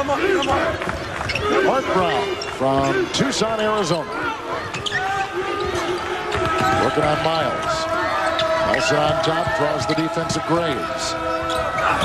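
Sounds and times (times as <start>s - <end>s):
arena crowd noise: 0.0s - 12.0s
voices: 0.0s - 12.0s.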